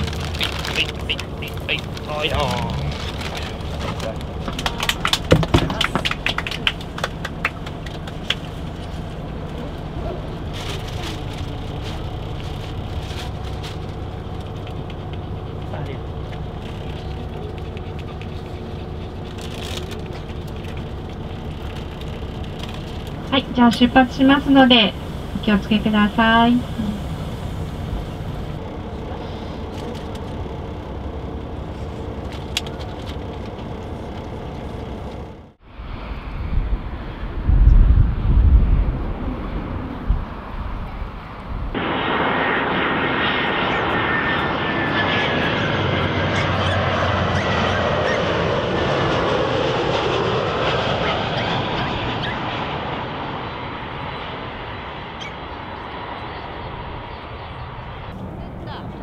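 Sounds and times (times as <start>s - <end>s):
bus engine hum: 0.0s - 59.0s
jet airliner engine roar: 0.0s - 59.0s
loud low rumbles: 0.0s - 59.0s.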